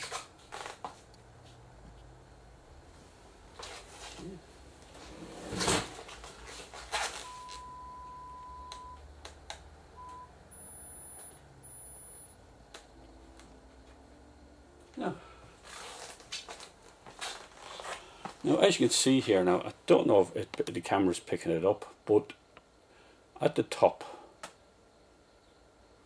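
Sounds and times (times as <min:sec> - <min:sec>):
steady test tone: 0:07.2 - 0:09.1, 0:09.9 - 0:15.4
high-pitched beeps: 0:10.0 - 0:12.4.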